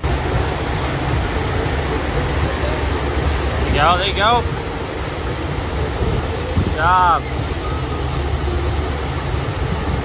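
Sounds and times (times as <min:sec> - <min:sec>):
water rushing: 0:00.0 - 0:10.0.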